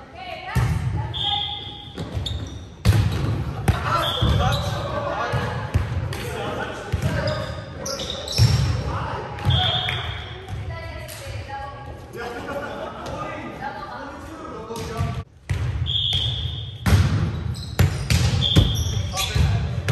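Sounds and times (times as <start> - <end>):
sneakers squeaking on court: 0.6 - 5.9, 6.9 - 10.9, 15.5 - 19.9.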